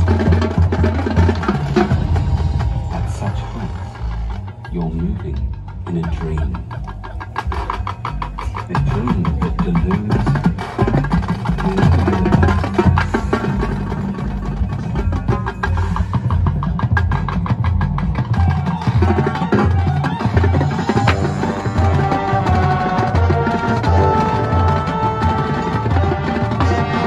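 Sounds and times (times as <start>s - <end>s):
marching band drums: 0.0s - 27.0s
low brass notes: 20.7s - 27.0s.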